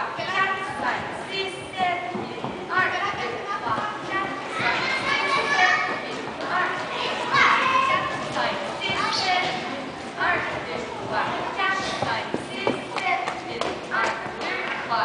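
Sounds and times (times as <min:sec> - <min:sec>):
girls chattering and calling out: 0:00.0 - 0:15.0.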